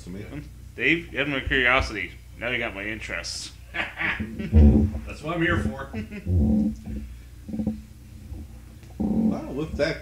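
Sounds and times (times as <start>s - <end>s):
man wordless voice sounds: 5.0s - 6.0s.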